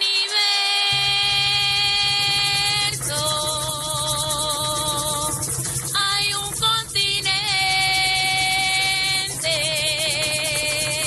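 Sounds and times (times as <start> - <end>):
maracas shaking: 0.0 - 11.0
woman singing with vibrato: 0.0 - 11.0.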